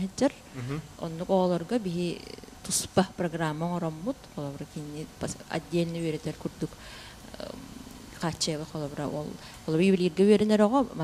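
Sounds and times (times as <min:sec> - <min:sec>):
faint low room hum: 0:00.0 - 0:11.0
person speaking into a microphone: 0:00.6 - 0:00.9.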